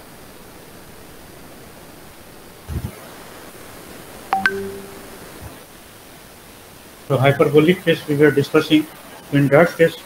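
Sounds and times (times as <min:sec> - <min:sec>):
steady low hiss: 0:00.0 - 0:10.0
electronic tone: 0:04.4 - 0:05.5.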